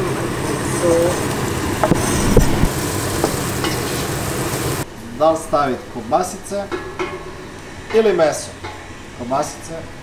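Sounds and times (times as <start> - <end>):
onion sizzling in a pot: 0.0 - 5.5
cleaver knocking on cutting board: 1.8 - 2.0.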